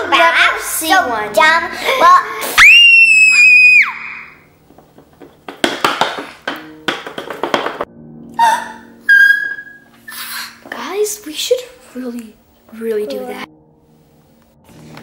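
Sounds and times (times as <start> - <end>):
child screaming: 2.6 - 4.4
high squeal: 8.4 - 10.2.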